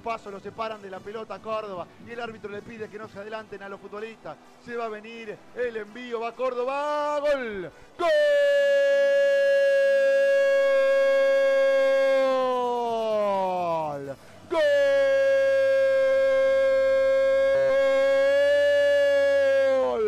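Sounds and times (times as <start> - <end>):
quick breath: 7.7 - 8.0, 14.2 - 14.5.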